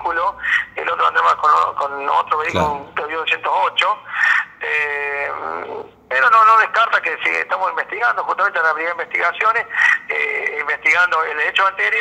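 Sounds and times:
man's held hesitation sound: 0:02.5 - 0:03.0.

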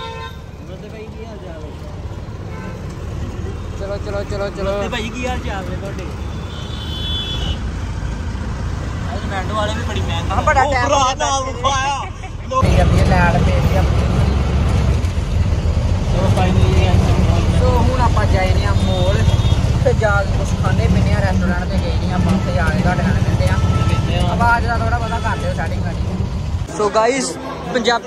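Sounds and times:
voices talking: 0:00.0 - 0:06.6, 0:07.4 - 0:15.1, 0:15.7 - 0:28.0
auto-rickshaw engine rumble: 0:00.0 - 0:28.0.

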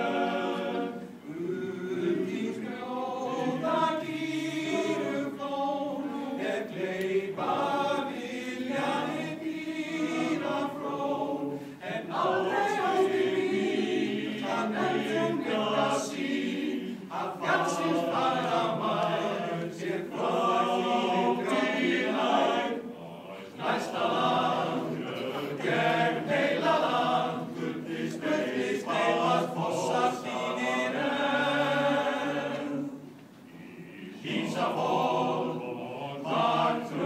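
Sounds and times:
male choir singing a cappella: 0:00.0 - 0:37.0.

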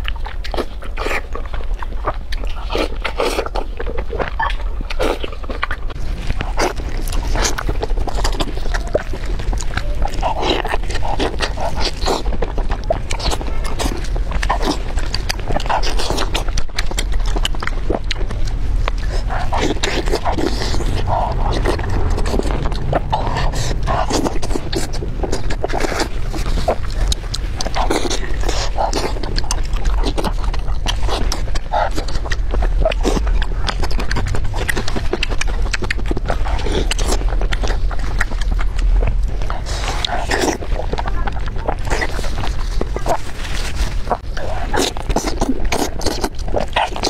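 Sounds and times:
low hum: 0:00.0 - 0:45.7
wet chewing mouth sounds: 0:00.0 - 0:47.0.

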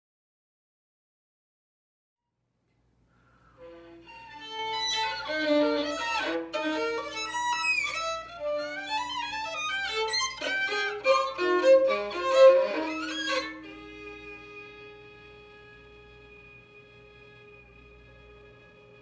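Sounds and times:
solo violin playing: 0:03.6 - 0:19.0.

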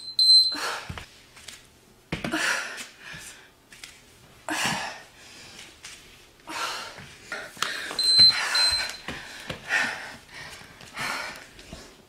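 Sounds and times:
hard breathing: 0:06.5 - 0:12.0.

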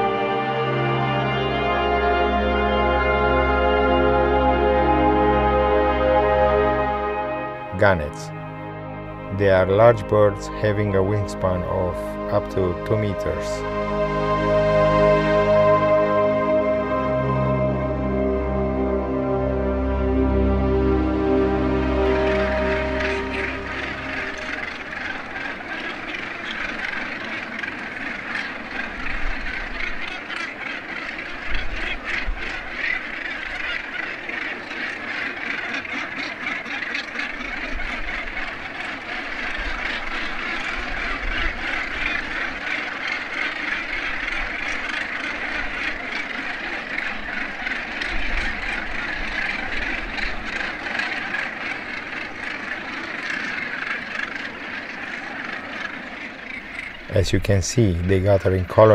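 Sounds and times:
gannets calling: 0:00.0 - 0:58.9.

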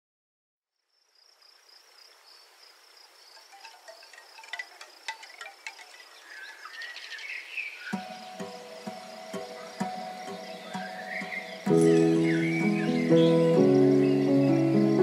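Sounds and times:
high insect trill: 0:00.8 - 0:15.0
wind chimes tinkling: 0:03.3 - 0:07.3.

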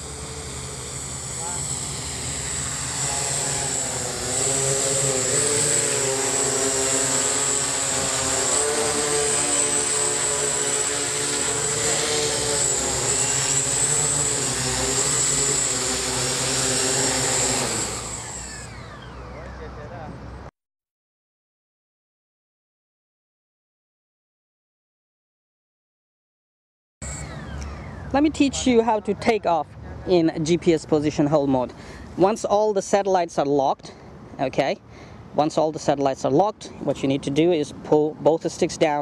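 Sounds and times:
drone propellers whirring: 0:00.0 - 0:20.5, 0:27.0 - 0:39.0.

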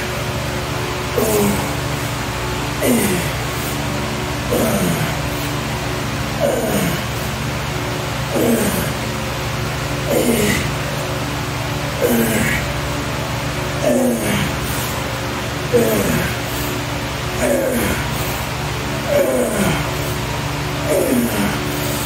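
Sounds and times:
steady hum: 0:00.0 - 0:22.0
man grunting with effort: 0:01.0 - 0:11.0, 0:11.9 - 0:13.0, 0:13.7 - 0:22.0.

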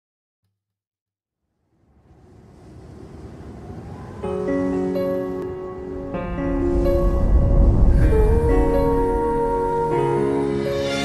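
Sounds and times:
noise riser: 0:01.6 - 0:05.1, 0:06.0 - 0:09.6
faint rising tone: 0:01.7 - 0:10.2.

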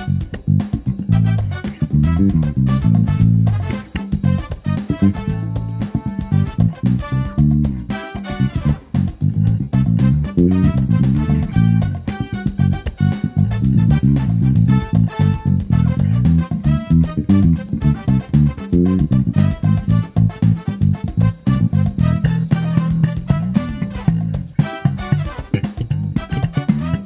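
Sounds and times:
backing track: 0:00.0 - 0:27.0
electric bass played fingerstyle: 0:00.0 - 0:27.0.

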